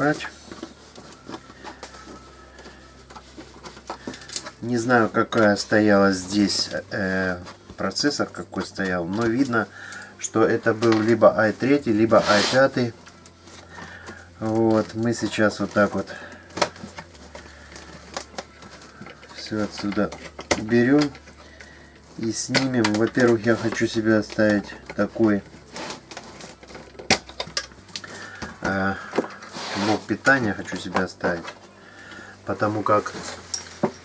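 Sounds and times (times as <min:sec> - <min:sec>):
low steady hum: 0:00.0 - 0:34.0
screwdriver handling noise: 0:12.5 - 0:31.6.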